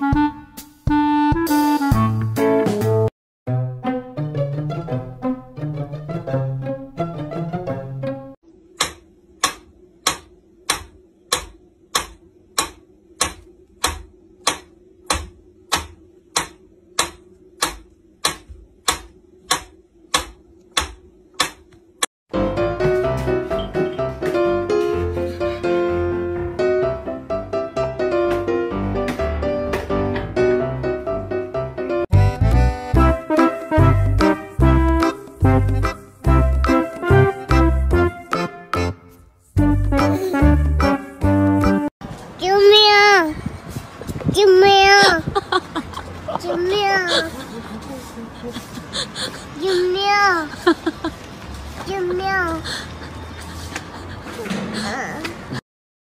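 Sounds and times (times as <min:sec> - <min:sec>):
background music: 0:00.0 - 0:08.4, 0:22.3 - 0:41.9.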